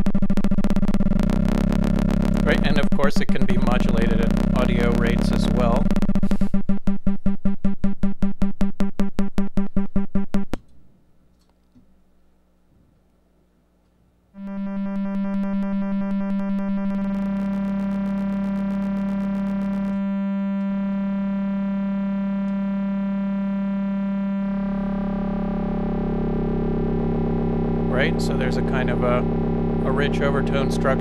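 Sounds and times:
synthesizer drone: 0:00.0 - 0:09.4, 0:14.4 - 0:31.0.

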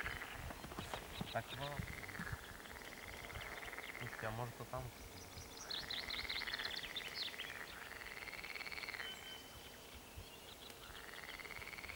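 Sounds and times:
frogs calling in pulsed trills: 0:01.2 - 0:04.4, 0:05.6 - 0:09.5, 0:10.8 - 0:11.9.

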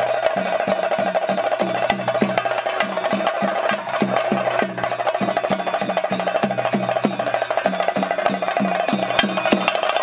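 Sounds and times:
high metallic ringing: 0:00.0 - 0:10.0
rapid ritual drumming: 0:00.0 - 0:10.0.

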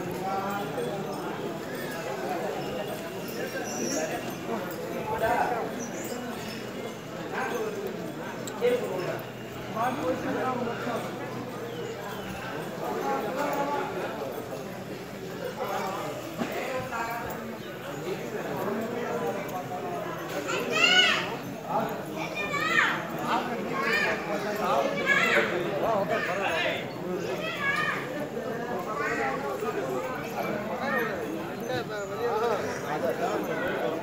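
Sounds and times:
crowd walking and talking: 0:00.0 - 0:34.0.

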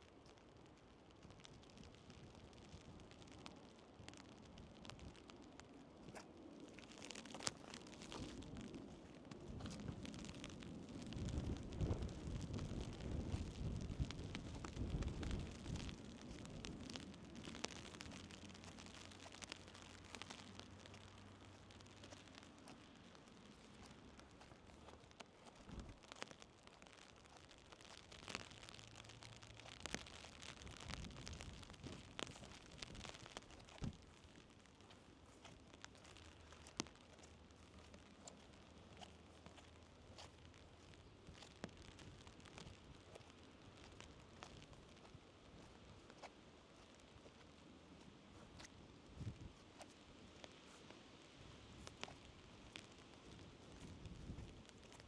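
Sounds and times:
faint ticks and rustles: 0:00.0 - 0:55.0
wind buffeting microphone: 0:09.4 - 0:18.3, 0:49.1 - 0:49.6, 0:53.4 - 0:54.8.

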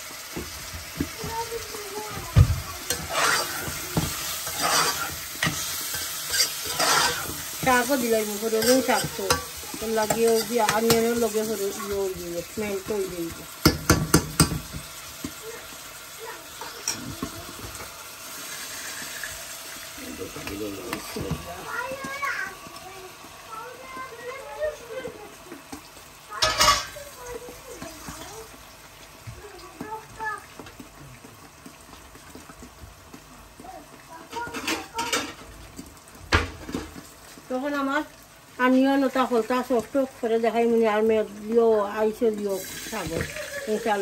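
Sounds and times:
vegetables sizzling: 0:00.0 - 0:44.0
metal spoon knocking on saucepan: 0:13.6 - 0:14.9.

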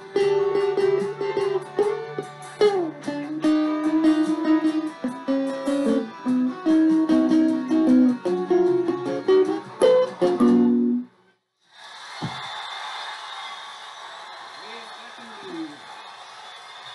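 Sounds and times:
clean electric guitar playing: 0:00.0 - 0:11.1
thump: 0:12.2 - 0:12.5.

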